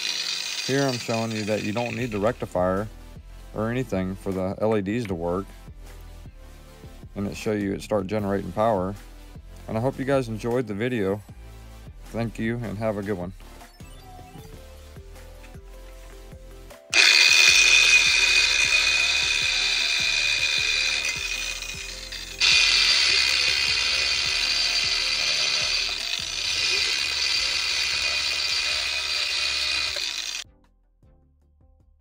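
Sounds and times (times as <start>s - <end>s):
motor whirring with rattle: 0.0s - 2.2s, 16.9s - 30.4s.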